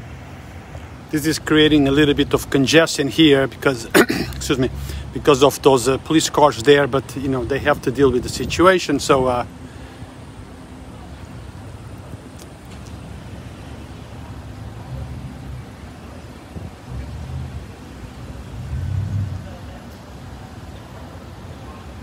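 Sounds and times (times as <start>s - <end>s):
traffic engines rumbling: 0.0s - 22.0s.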